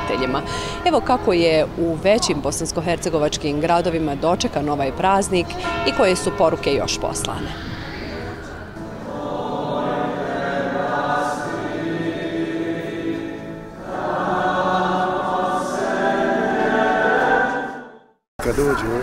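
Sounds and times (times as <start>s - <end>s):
group of voices singing: 7.5s - 18.1s.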